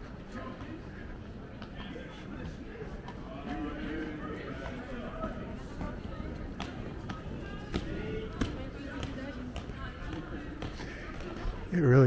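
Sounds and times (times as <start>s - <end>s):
people talking: 0.3s - 12.0s.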